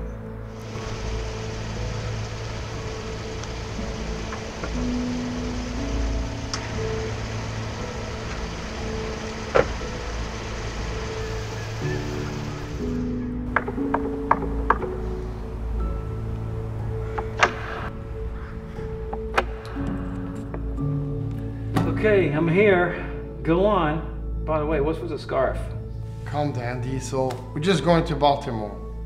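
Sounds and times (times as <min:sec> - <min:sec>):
music with long held notes: 0:00.0 - 0:29.0
car engine idling: 0:00.5 - 0:20.7.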